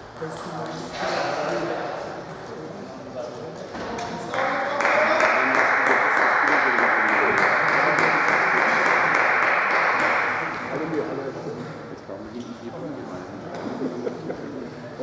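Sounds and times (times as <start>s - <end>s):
murmur of voices: 0.0s - 15.0s.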